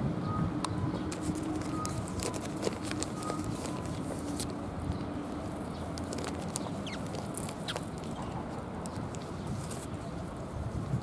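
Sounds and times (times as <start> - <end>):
sparrows chirping: 0.2 - 10.3.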